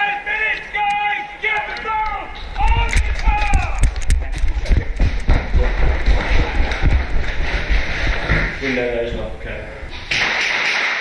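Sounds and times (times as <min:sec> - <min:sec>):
running footsteps: 0:02.0 - 0:08.8
thumps and knocks: 0:02.6 - 0:08.6.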